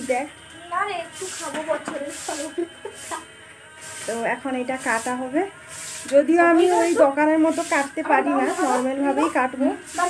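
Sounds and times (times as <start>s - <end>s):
woman talking: 0.0s - 3.2s, 4.0s - 10.0s.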